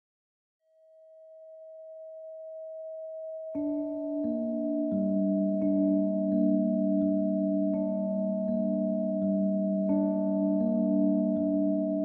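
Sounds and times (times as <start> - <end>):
steady sine tone: 0.7 - 12.0.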